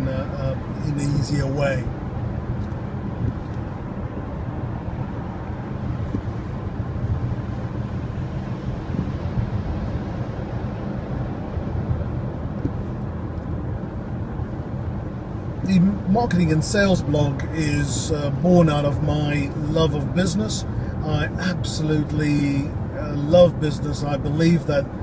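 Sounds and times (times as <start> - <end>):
road and engine drone in car: 0.0 - 25.0.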